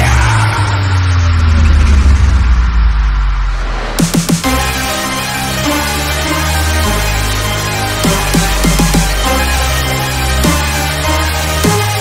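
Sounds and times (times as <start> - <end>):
heavy bass with downward pitch sweeps: 0.0 - 12.0.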